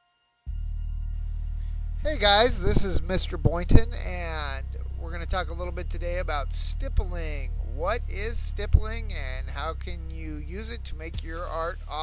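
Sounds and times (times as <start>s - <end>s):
steady low hum: 0.5s - 12.0s.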